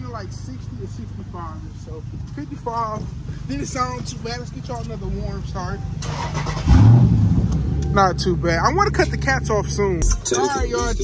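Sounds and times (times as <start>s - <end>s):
engine cranking: 6.0s - 8.2s
engine revving then idling: 6.0s - 9.8s.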